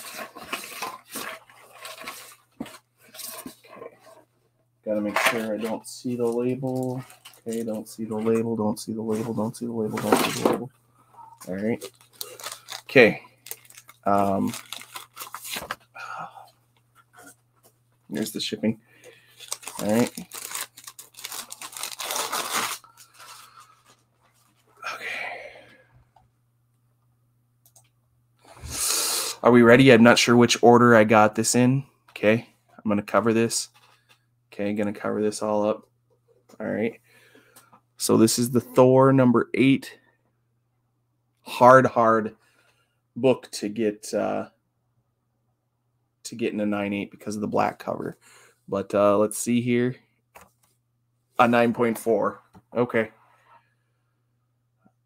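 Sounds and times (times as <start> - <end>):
package crinkling and rustling: 0.0 - 3.8, 6.2 - 7.9, 11.8 - 15.9, 19.4 - 24.6.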